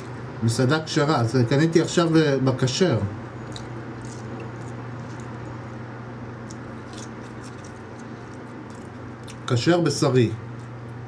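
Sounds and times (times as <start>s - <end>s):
steady low hum: 0.0s - 11.0s
man chewing: 3.4s - 9.5s.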